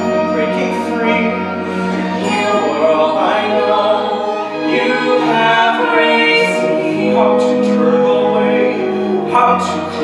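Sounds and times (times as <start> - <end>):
musical accompaniment: 0.0 - 10.0
choir singing long notes: 1.0 - 10.0.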